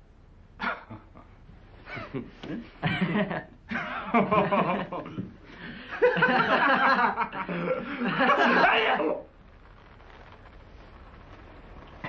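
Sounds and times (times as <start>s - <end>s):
men laughing: 1.8s - 9.0s.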